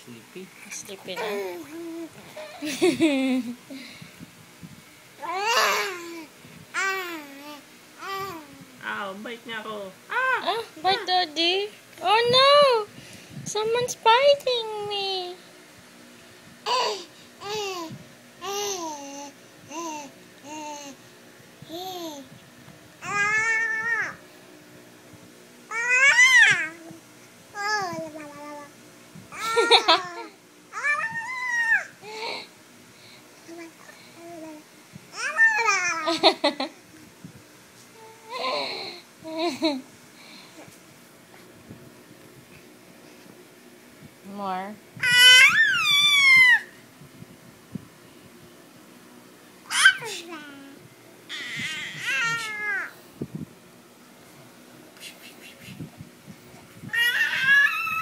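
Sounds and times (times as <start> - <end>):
baby squealing: 25.7 - 26.6, 45.0 - 46.7, 51.3 - 52.9, 56.9 - 58.0.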